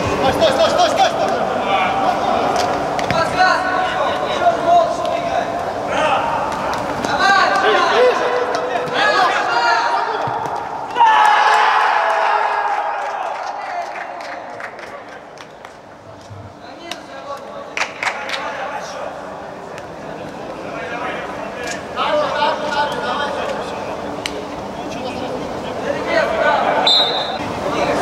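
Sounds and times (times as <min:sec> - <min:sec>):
players shouting indoors: 0:07.2 - 0:14.6
loud crowd shout: 0:07.3 - 0:14.6.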